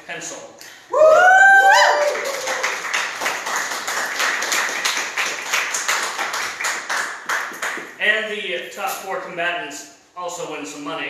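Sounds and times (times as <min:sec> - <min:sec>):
audience clapping: 0:01.8 - 0:08.0.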